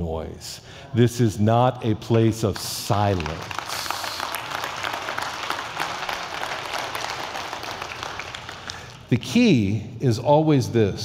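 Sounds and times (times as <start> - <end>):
crowd applauding: 2.1 - 9.1.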